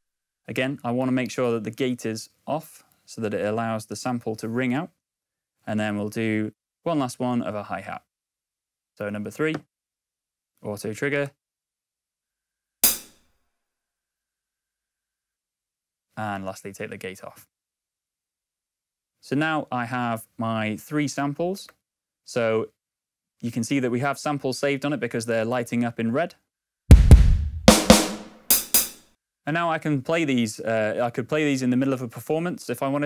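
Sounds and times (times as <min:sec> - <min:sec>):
hi-hat hit: 0:12.8 - 0:13.2, 0:26.9 - 0:29.0.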